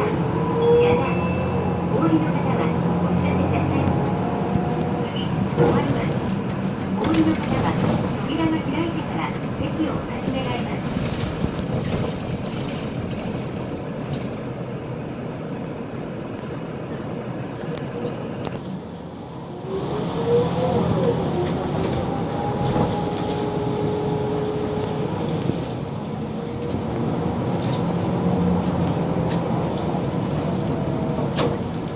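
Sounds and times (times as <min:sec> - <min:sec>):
bus drivetrain whine: 0:00.0 - 0:31.9
bus engine and road noise: 0:00.0 - 0:31.9.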